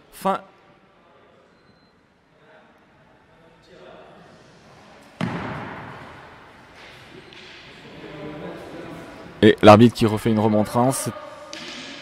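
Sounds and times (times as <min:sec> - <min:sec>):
loud thump with hall echo: 0:05.2 - 0:06.4.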